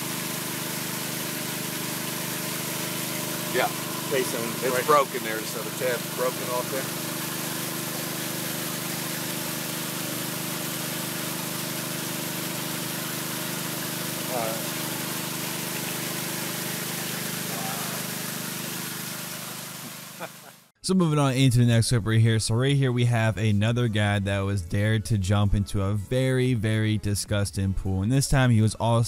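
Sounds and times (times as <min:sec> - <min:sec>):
water rushing hiss: 0:00.0 - 0:20.6
pool pump humming: 0:00.0 - 0:20.7.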